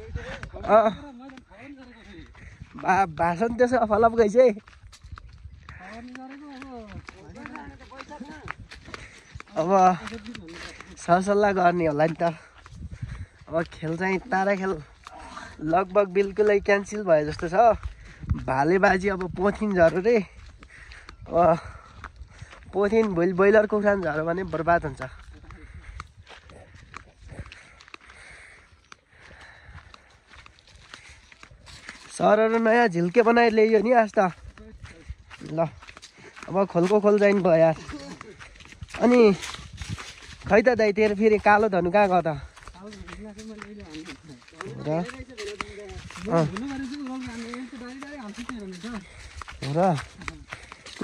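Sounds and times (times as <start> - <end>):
footsteps crunching on dirt and leaves: 0.0 - 51.0
man speaking: 5.8 - 8.5, 9.5 - 12.4, 36.5 - 38.4, 39.0 - 39.6, 40.4 - 51.0.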